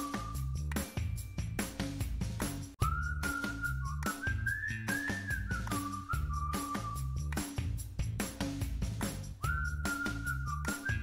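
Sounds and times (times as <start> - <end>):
person whistling a tune: 0.0 - 1.2, 2.8 - 7.4, 9.3 - 11.0
background music with beat and bass: 0.0 - 11.0.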